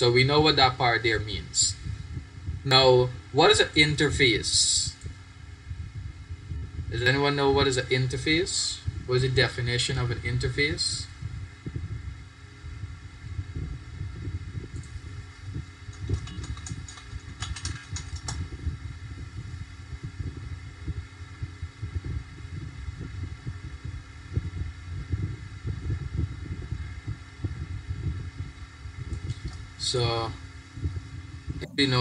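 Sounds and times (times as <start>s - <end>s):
low rumbling microphone noise: 0.0s - 32.0s.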